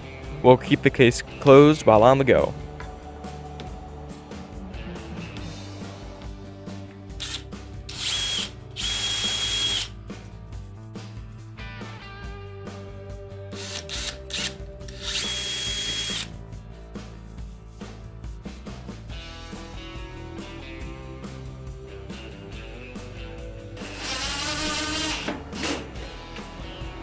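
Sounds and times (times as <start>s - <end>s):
background music: 0.0s - 27.0s
electric drill boring into wood: 7.2s - 9.9s, 13.6s - 16.3s, 23.8s - 25.3s.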